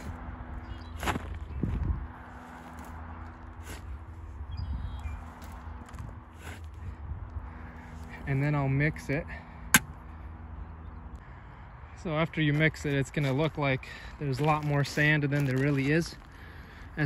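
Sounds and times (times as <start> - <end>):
shovel scraping compost: 3.5 - 4.0, 6.4 - 6.8.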